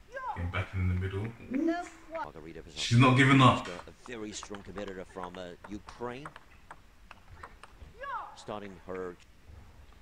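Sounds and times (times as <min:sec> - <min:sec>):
man's voice: 0:00.4 - 0:01.5, 0:02.4 - 0:06.1
table tennis ball clicks: 0:03.7 - 0:07.8.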